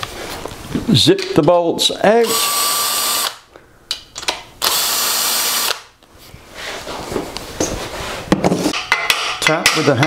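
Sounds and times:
power drill spinning bolt: 2.3 - 3.4
metallic handling noises: 6.8 - 10.0.

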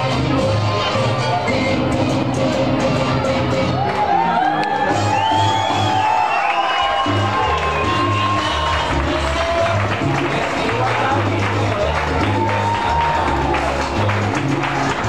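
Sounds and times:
crowd shouting and cheering: 0.0 - 15.0
latin dance music: 0.0 - 15.0.

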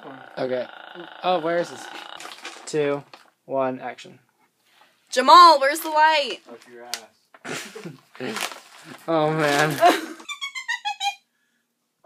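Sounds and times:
person giggling: 7.4 - 8.5, 9.6 - 11.2.

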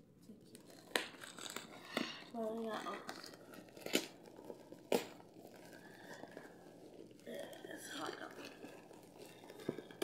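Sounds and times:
paper tearing: 0.6 - 5.7.

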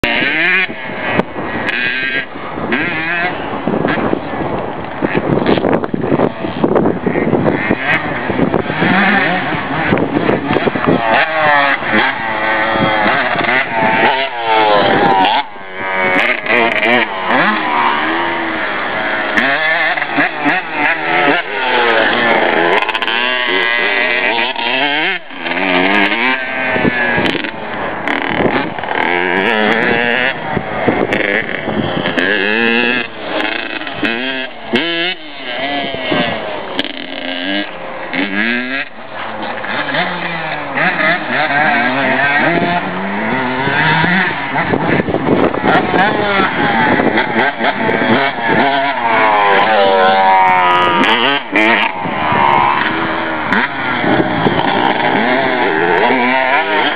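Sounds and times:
dirt bike engine revving: 0.0 - 56.9.

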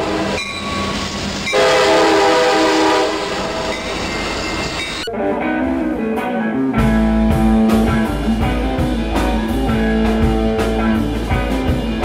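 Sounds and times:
train horn blast: 0.0 - 4.0
train rumbling past: 0.0 - 12.0.

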